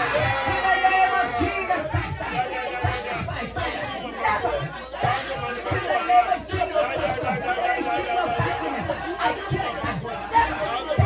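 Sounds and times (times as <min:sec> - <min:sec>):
man praying into a microphone: 0:00.0 - 0:11.0.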